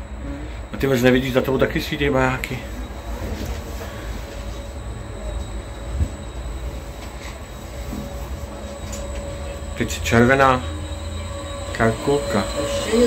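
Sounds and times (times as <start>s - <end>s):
faint steady whine: 0.0s - 13.0s
ferris wheel mechanical rumble: 0.0s - 13.0s.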